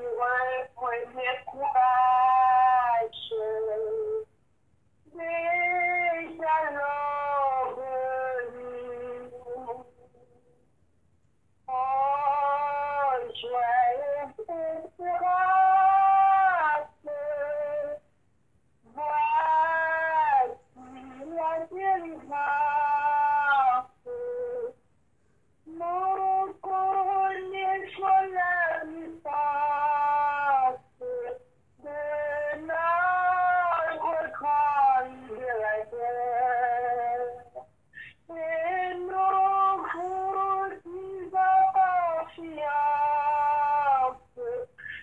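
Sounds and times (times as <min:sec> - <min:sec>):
woman singing a hymn: 0:00.0 - 0:04.3, 0:05.0 - 0:10.6, 0:11.6 - 0:18.1, 0:18.8 - 0:24.8, 0:25.6 - 0:45.0.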